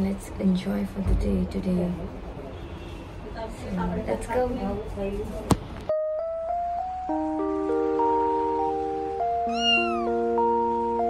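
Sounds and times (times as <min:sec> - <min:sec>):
cat meowing: 0:09.4 - 0:10.2.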